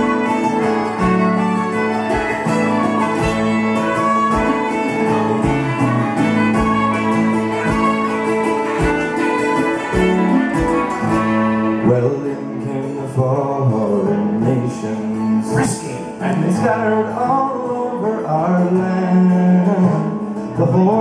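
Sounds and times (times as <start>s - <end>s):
fiddle playing a tune: 0.0s - 21.0s
strummed acoustic guitar: 0.0s - 21.0s
strummed long-necked string instrument: 0.0s - 21.0s.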